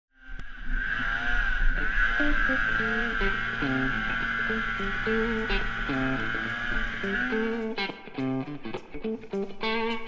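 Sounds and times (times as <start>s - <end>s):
snowmobile engine whine: 0.2s - 7.8s.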